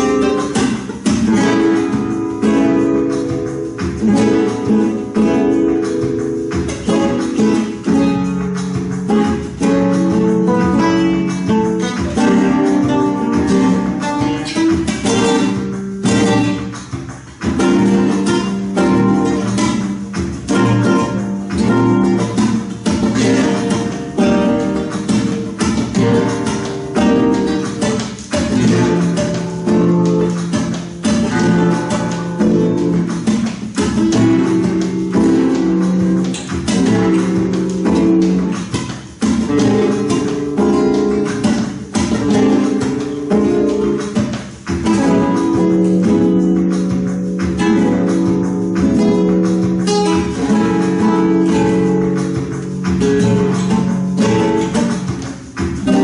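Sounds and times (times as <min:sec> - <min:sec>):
flamenco guitars strumming: 0:00.0 - 0:56.0.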